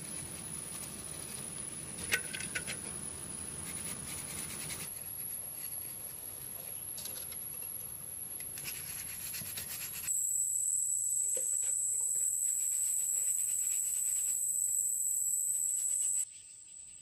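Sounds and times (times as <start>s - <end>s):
high-pitched insect drone: 10.1s - 16.3s.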